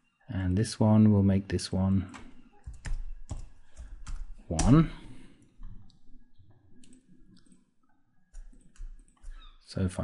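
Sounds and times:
computer mouse clicks: 0:06.8 - 0:07.6.

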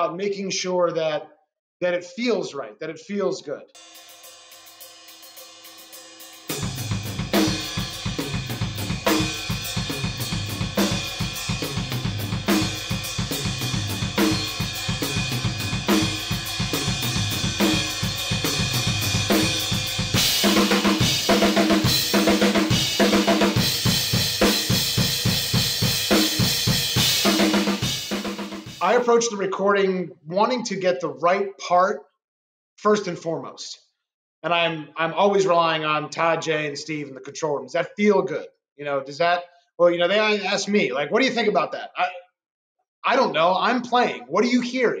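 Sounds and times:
crash cymbals: 0:03.8 - 0:28.8
rock drum beat: 0:03.8 - 0:29.0.

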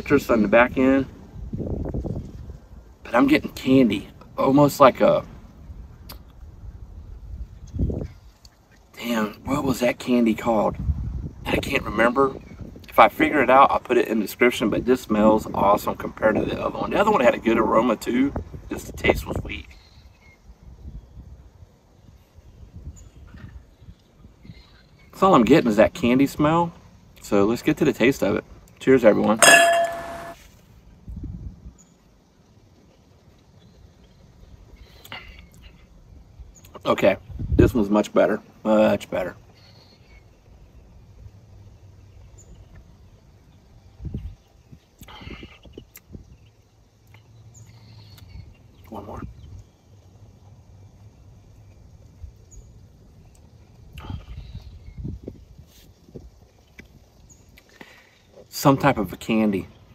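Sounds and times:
wind rumble on microphone: 0:01.0 - 0:03.1, 0:05.3 - 0:08.4, 0:10.5 - 0:13.1, 0:18.2 - 0:19.7, 0:20.4 - 0:24.7, 0:31.0 - 0:31.8, 0:37.2 - 0:37.8, 0:43.6 - 0:46.5, 0:53.7 - 0:57.1
struck glass ringing: 0:29.4 - 0:30.4.

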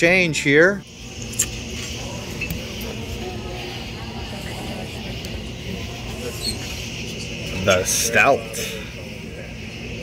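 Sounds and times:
indistinct chatter of diners: 0:00.0 - 0:10.0
steady low hum: 0:00.0 - 0:10.0.

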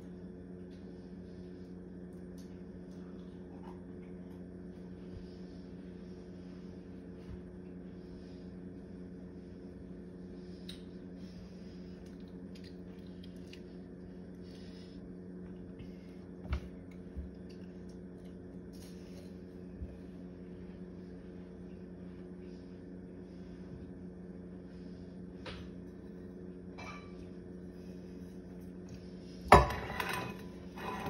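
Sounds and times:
steady low hum: 0:00.0 - 0:31.0.

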